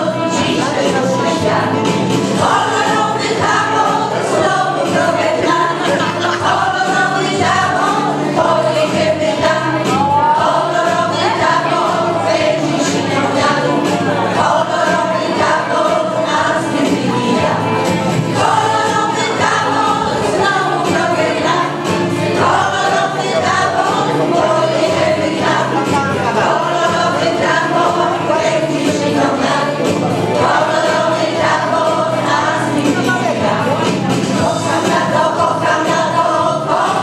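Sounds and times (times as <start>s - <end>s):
women's choir singing: 0.0s - 37.0s.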